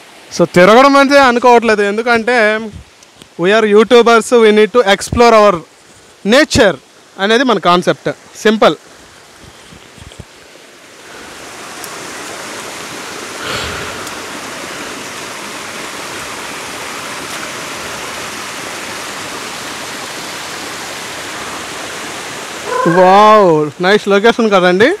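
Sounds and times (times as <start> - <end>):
water rushing over rocks: 0.0 - 25.0.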